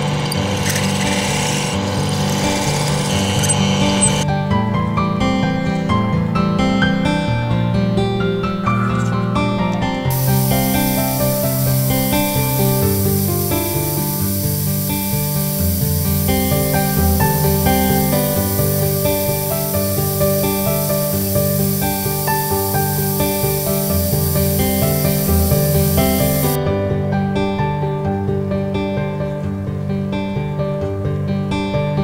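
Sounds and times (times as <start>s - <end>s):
band saw hiss cutting wood: 10.1s - 26.6s.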